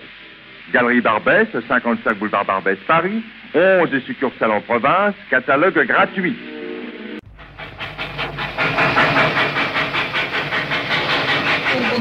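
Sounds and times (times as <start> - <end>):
steam hiss: 0.0 - 12.0
steam train chuffing: 0.0 - 12.0.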